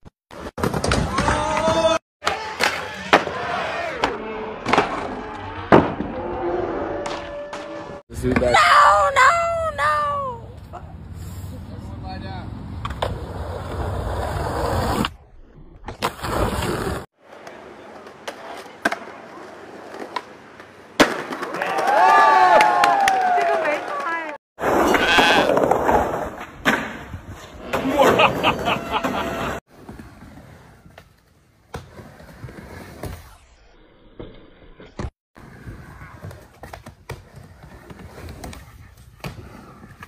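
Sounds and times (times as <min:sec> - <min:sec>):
crowd shouting and cheering: 0:01.0 - 0:06.3, 0:21.4 - 0:24.4
skateboard rolling: 0:12.6 - 0:22.1, 0:24.6 - 0:40.0
skateboard clack: 0:17.3 - 0:30.0.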